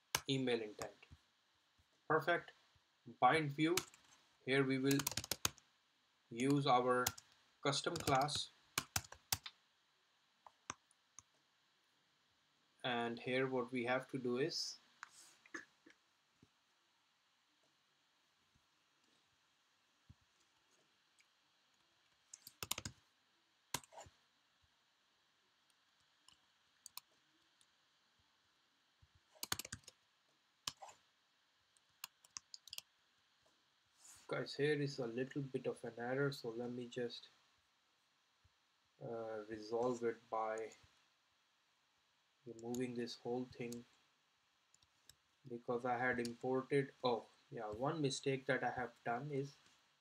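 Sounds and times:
computer keyboard typing: 3.8 - 4.1, 4.9 - 5.6, 7.9 - 9.5, 22.3 - 23.0, 23.7 - 24.1, 29.3 - 30.0, 32.0 - 32.8
keyboard keystrokes: 8.0 - 9.5.

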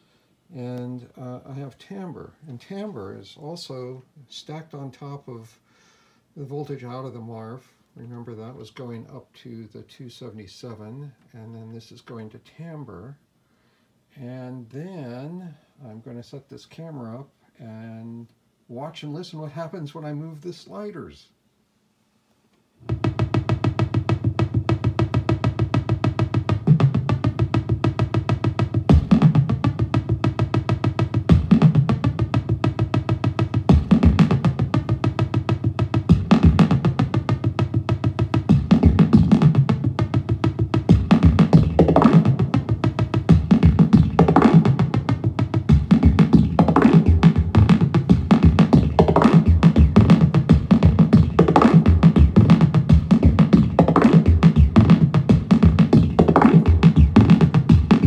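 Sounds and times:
synthesizer drum-like pulses: 22.8 - 58.0
pitched looping synth accents: 22.9 - 58.0.

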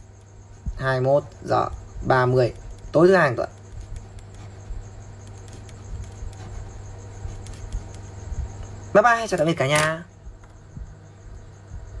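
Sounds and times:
low hum: 10.1 - 12.0.

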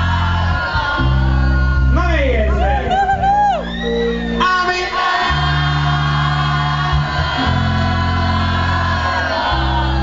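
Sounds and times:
electropop band playing chords: 0.0 - 10.0.

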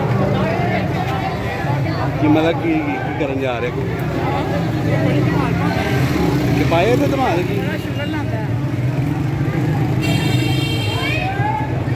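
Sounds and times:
street crowd noise: 0.0 - 11.9.

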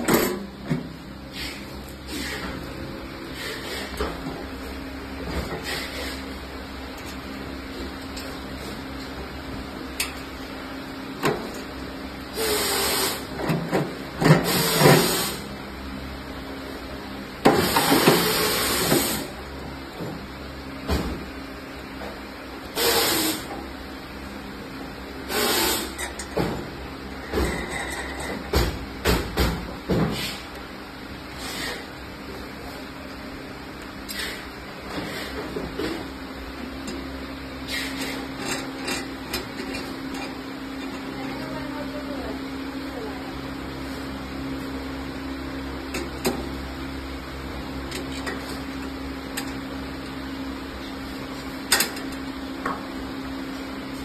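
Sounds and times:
steady background hum: 0.0 - 54.0.

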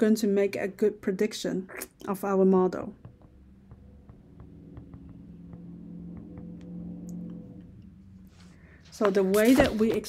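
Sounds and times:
low steady hum: 0.0 - 10.0
stylus tapping on glass screen: 3.0 - 7.4.

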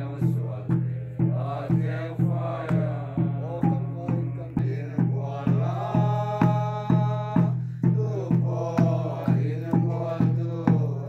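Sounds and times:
congregation singing a hymn: 0.0 - 11.0
hand drum beating: 0.2 - 11.0.

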